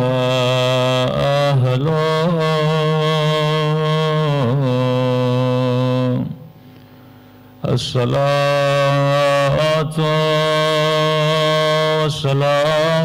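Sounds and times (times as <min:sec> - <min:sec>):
man chanting through a microphone: 0:00.0 - 0:06.5, 0:07.6 - 0:13.0.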